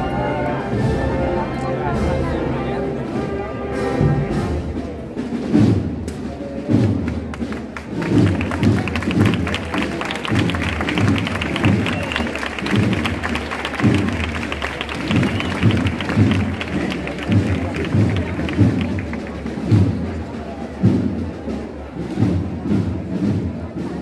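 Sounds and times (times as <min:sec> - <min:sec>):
wind band playing a march: 0:00.0 - 0:24.0
crowd applauding: 0:07.0 - 0:19.8.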